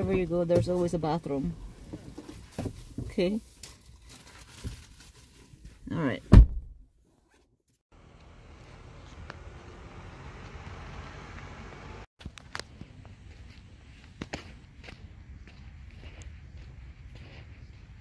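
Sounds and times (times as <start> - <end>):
footsteps on sand: 11.7 - 18.0.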